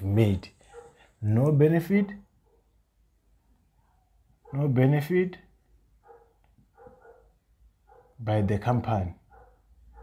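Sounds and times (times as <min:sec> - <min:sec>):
dog barking faintly: 0:00.0 - 0:01.5, 0:03.6 - 0:05.2, 0:06.0 - 0:08.4, 0:09.2 - 0:10.0.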